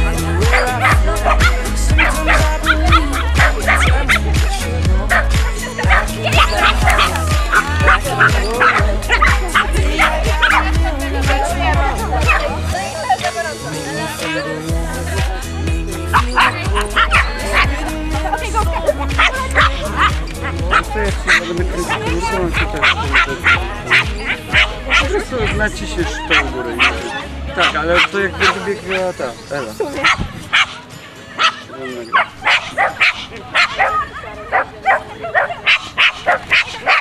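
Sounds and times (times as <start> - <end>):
music with beat and singing: 0.0 - 29.2
dog barking: 0.4 - 4.5, 5.1 - 10.8, 12.2 - 12.6, 16.1 - 18.0, 18.6 - 29.1, 30.0 - 30.8, 31.4 - 37.0.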